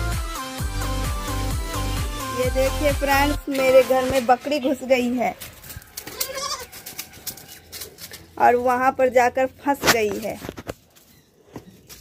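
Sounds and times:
goat bleating: 6.0 - 7.6.

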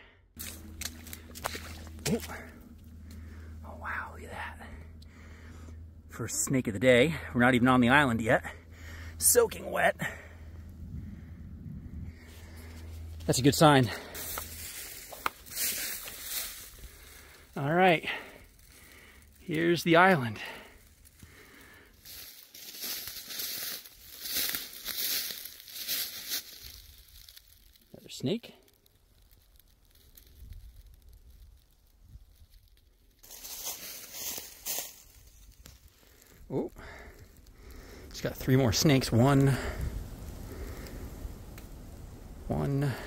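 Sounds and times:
footsteps in dry grass: 0.4 - 6.0, 12.1 - 28.0, 32.4 - 38.3.

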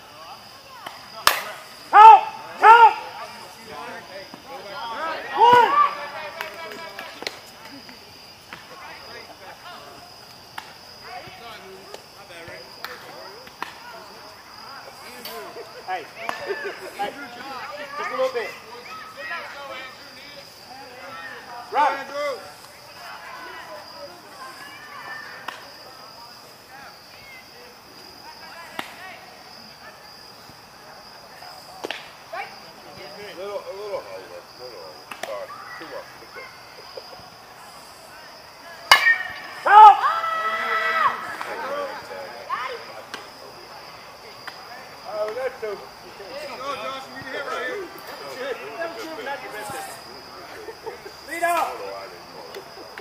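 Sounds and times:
players calling out: 0.0 - 53.0
loud shouting: 0.6 - 7.1, 15.8 - 25.9, 38.2 - 43.1
bat cracking a ball: 0.8 - 1.6, 31.8 - 32.1, 38.9 - 39.7.

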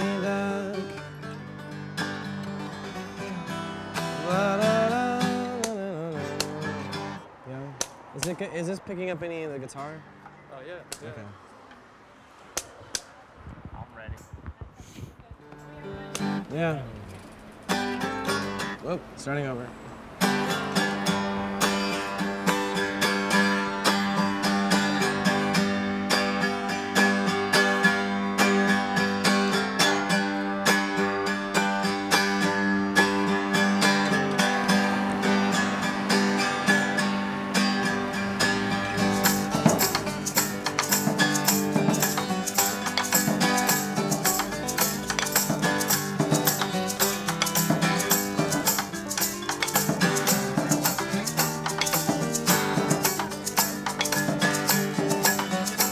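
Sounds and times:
acoustic guitar playing: 0.0 - 11.3, 15.4 - 55.9
drums played with sticks: 38.6 - 55.9.

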